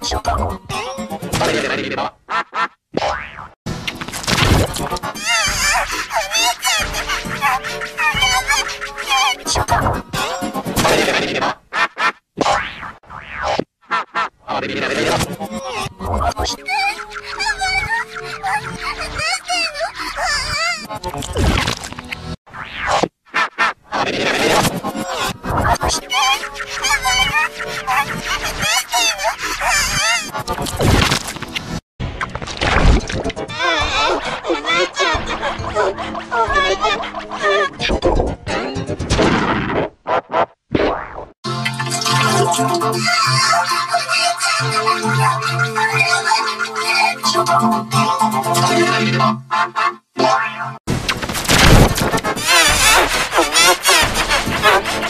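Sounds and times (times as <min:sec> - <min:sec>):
cartoon boing sound effect: 0:03.0 - 0:03.6, 0:12.4 - 0:13.7
electronic music with held tones: 0:41.5 - 0:50.8.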